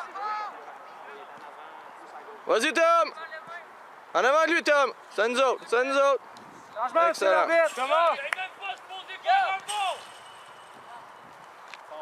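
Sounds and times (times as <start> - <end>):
voices shouting calls: 0.0 - 12.0.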